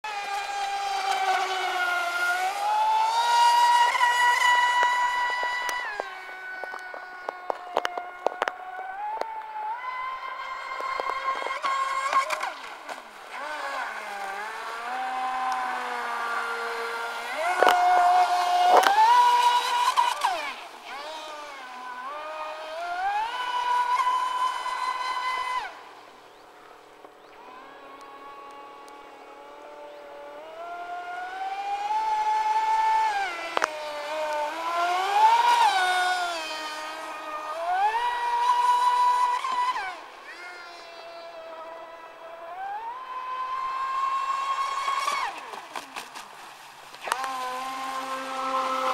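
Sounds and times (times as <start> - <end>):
electric motor whine: 0.0 - 48.9.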